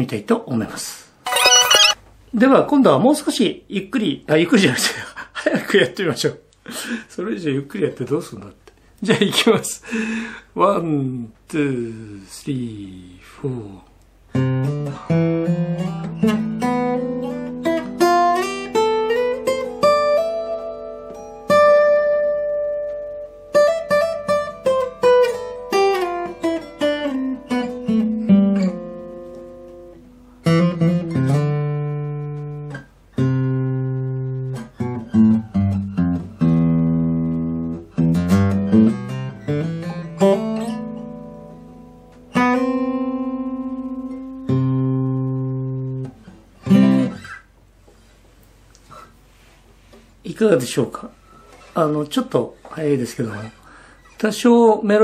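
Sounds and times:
acoustic guitar playing scale: 1.3s - 2.0s, 14.3s - 48.1s.

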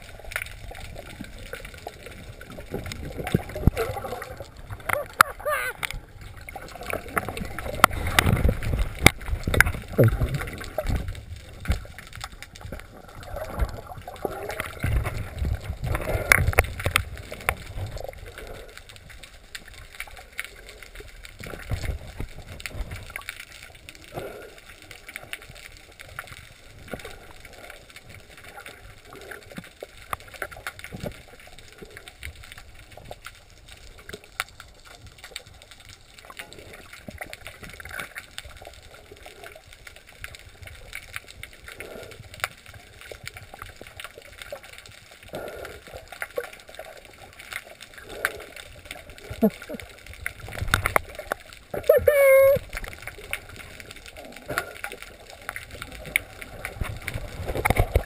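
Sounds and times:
clicks and crackles: 0.0s - 58.0s
muffled underwater water wash: 0.0s - 58.0s.

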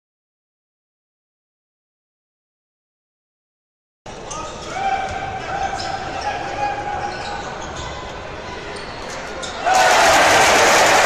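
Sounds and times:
echoing voices of players and crowd: 4.1s - 11.0s.

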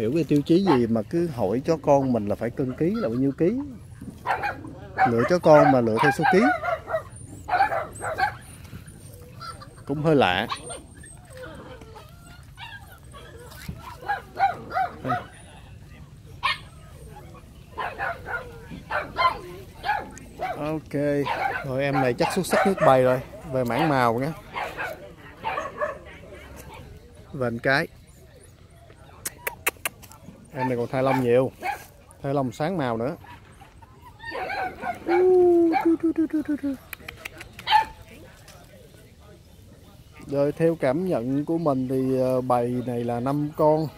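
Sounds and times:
puppy yipping and whimpering: 4.3s - 15.5s, 16.4s - 20.6s, 33.4s - 36.6s.

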